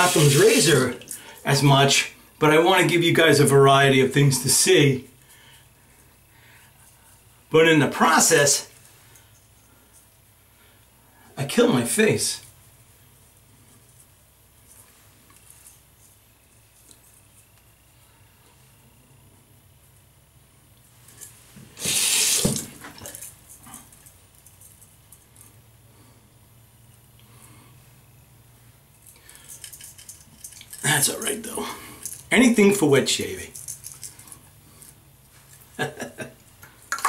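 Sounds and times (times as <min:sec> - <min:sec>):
faucet water splashing into sink: 0:00.0 - 0:01.1
faint handling sounds: 0:08.7 - 0:10.9, 0:12.4 - 0:20.1, 0:28.6 - 0:32.5.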